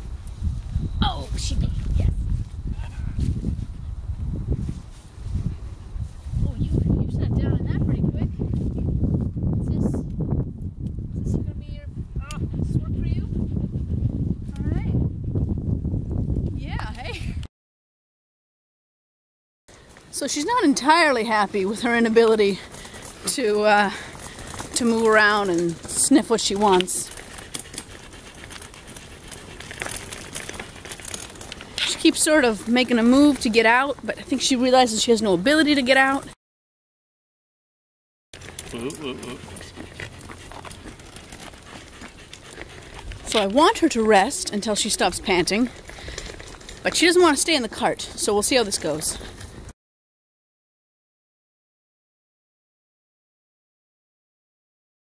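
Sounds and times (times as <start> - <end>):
dog panting: 12.9 - 15.4, 21.6 - 33.4, 38.4 - 46.9.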